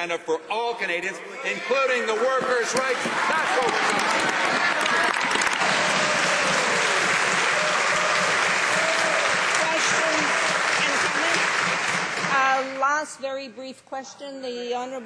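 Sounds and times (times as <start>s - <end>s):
crowd applauding: 1.8s - 12.8s.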